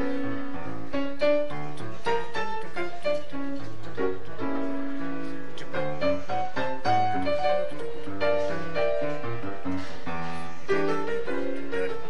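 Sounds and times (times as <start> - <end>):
piano melody: 0.0 - 12.0.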